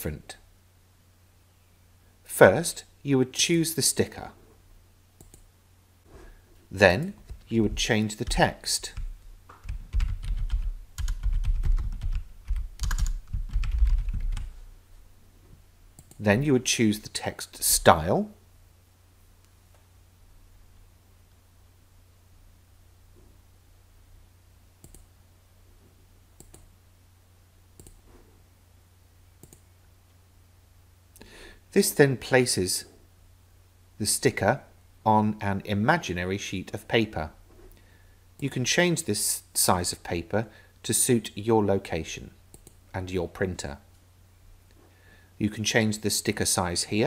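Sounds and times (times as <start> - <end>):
low steady hum: 0.0 - 47.0
typing on a computer keyboard: 9.0 - 14.5.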